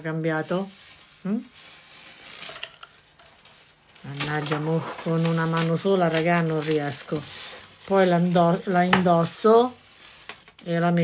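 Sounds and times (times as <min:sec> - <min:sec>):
bag rustling and crinkling: 0:00.0 - 0:10.8.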